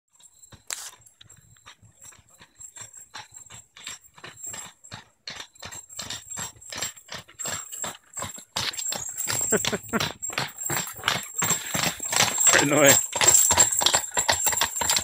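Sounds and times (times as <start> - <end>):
horse hooves clip-clopping on gravel: 0.1 - 15.0
wagon wheels crunching and rattling: 0.1 - 15.0.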